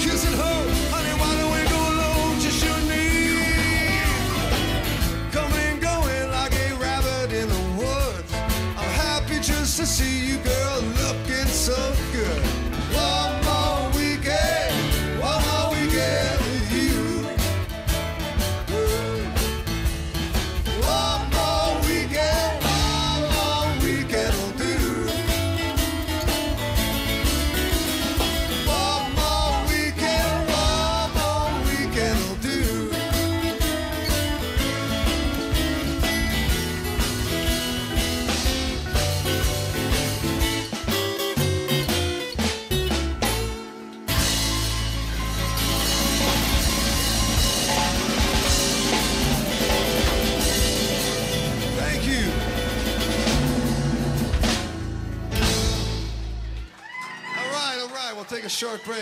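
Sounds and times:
live rock band playing: 0:00.0 - 0:58.1
guitar lead melody bending: 0:12.1 - 0:56.7.

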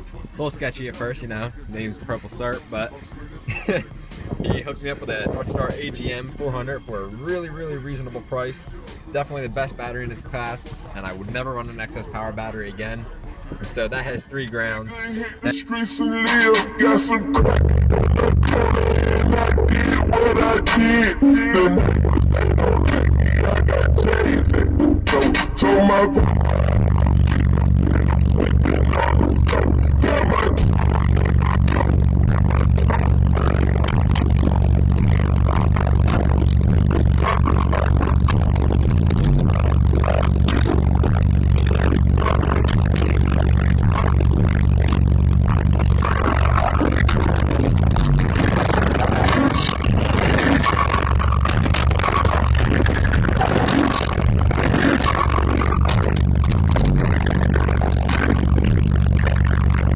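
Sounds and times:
loud bass-heavy music: 0:00.0 - 0:59.9.

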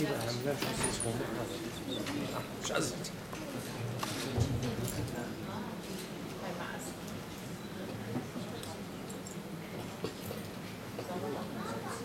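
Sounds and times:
crowd room noise in a hall: 0:00.0 - 0:12.0.

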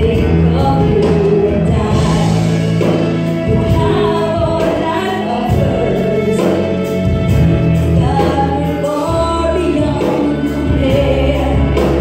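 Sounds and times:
woman singing into a microphone: 0:00.0 - 0:06.9, 0:07.8 - 0:12.0
band accompaniment with bass line: 0:00.0 - 0:12.0.

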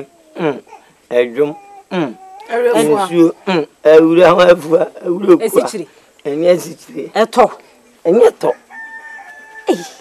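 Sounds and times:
person speaking: 0:01.9 - 0:08.5
rooster crowing: 0:08.5 - 0:10.0.

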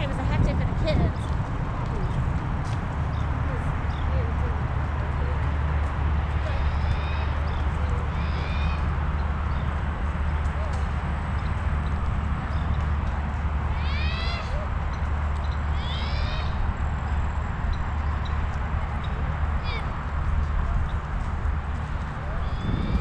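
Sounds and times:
bicycle rolling on pavement: 0:00.0 - 0:23.0
wind rumble on microphone: 0:00.0 - 0:23.0
short high animal calls: 0:06.5 - 0:08.9, 0:13.7 - 0:14.6, 0:15.7 - 0:16.6.

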